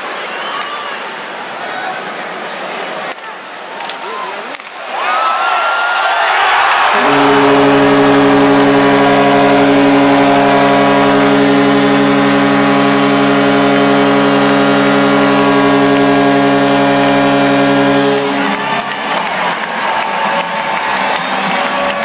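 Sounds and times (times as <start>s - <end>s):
crowd cheering and clapping: 4.8s - 22.0s
goal horn blast: 6.9s - 19.4s.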